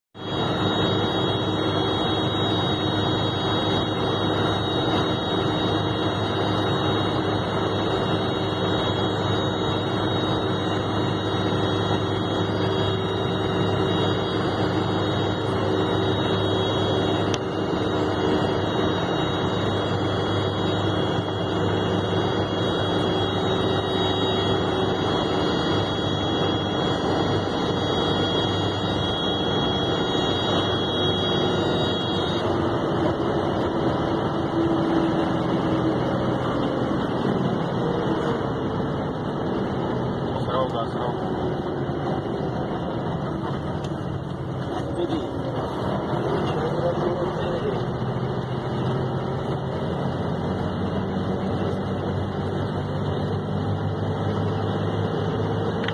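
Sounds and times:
thin high whine: 0.2 - 55.9
vehicle engine and road noise: 0.2 - 55.9.

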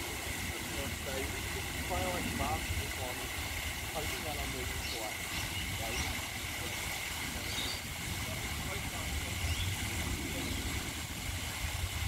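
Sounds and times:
faint voices talking: 0.0 - 11.0
fountain water splashing: 0.0 - 12.0.

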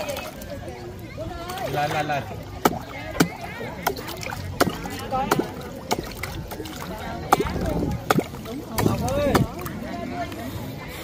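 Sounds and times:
people talking: 0.0 - 11.0
pond water splashing: 0.0 - 11.0.

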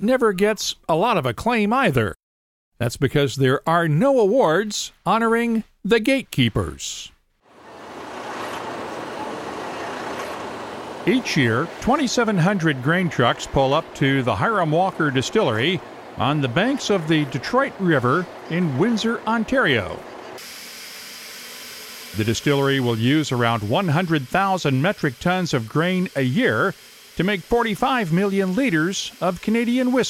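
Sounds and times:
road vehicle noise: 7.5 - 20.4
ambient background hiss: 7.6 - 30.0.

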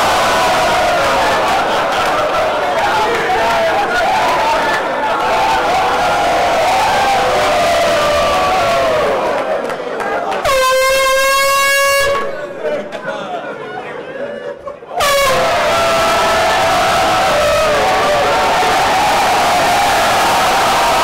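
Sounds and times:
players shouting and cheering: 0.0 - 21.0
air horn blast: 10.4 - 12.5, 15.0 - 16.2.

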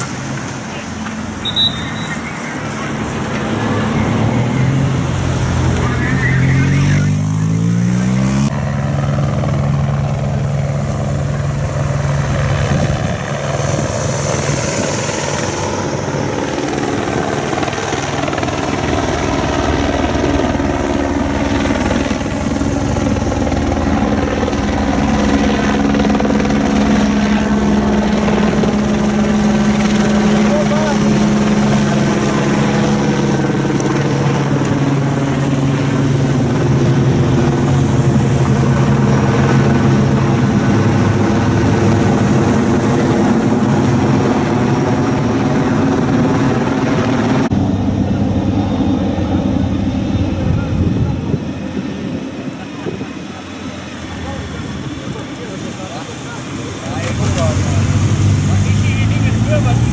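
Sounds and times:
vehicle motors droning: 0.0 - 12.7, 47.6 - 59.9.

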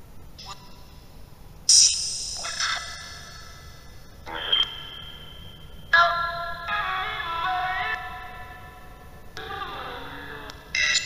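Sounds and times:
loud high ringing tones: 1.7 - 6.7.

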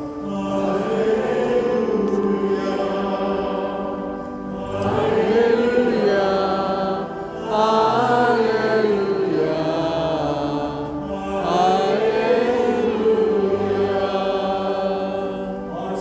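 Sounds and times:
liturgical chant: 0.0 - 16.0.

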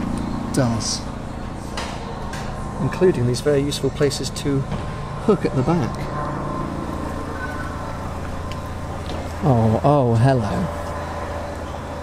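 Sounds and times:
low mechanical hum: 0.0 - 12.0
faint high tone: 6.1 - 8.8.

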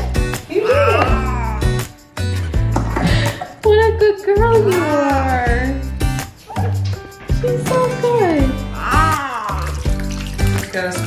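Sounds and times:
background music with steady beat: 0.0 - 11.0
water running: 6.8 - 11.0.

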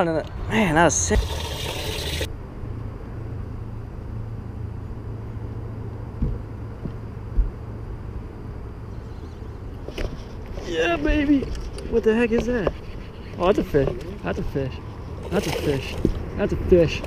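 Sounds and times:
steady low hum: 0.0 - 17.0
water hissing in livewell: 1.0 - 2.3.

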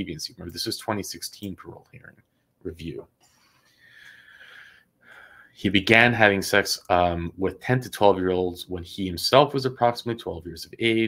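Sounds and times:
man breathing in: 3.2 - 5.6.

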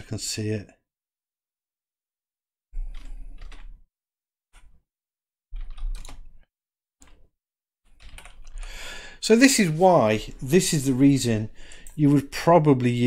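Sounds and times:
computer keyboard typing: 2.8 - 3.8, 5.6 - 6.4, 7.9 - 8.8.

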